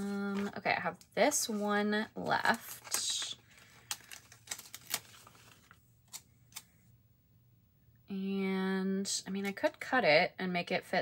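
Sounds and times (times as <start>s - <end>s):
paper clicks and rustles: 2.5s - 6.7s.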